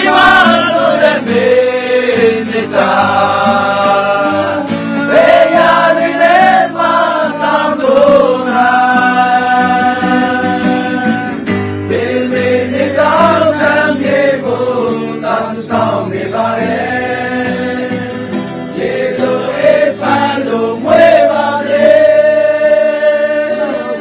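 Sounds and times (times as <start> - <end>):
voices singing together: 0.0 - 24.0.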